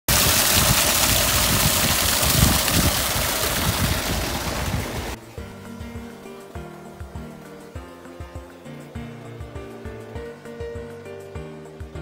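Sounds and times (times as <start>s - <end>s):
water rushing down concrete channel: 0.0s - 7.7s.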